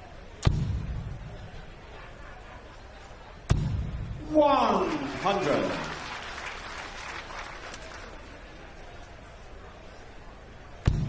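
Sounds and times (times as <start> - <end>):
crowd applauding: 4.4 - 8.6.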